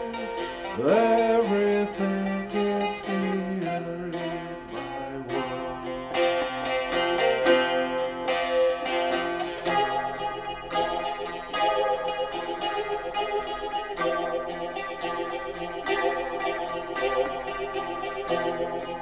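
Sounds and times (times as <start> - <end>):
plucked lute with drone: 0.0 - 19.0.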